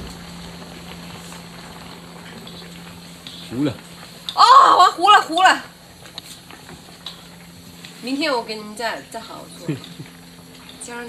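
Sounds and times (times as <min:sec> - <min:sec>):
broth boiling with bubbling hiss: 0:00.0 - 0:11.0.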